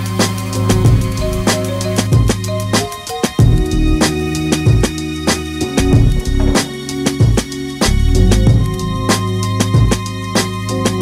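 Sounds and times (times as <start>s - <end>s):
steady drum beat: 0.0s - 11.0s.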